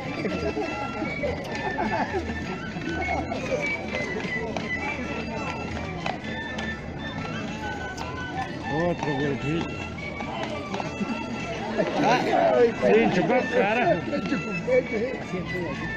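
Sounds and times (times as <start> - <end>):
crowd chatter: 0.0 - 15.9
held melody notes: 0.0 - 15.9.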